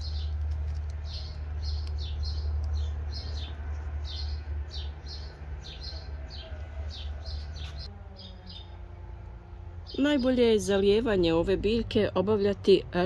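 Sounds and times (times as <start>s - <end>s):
small birds chirping: 0.0s - 8.8s, 9.5s - 12.8s.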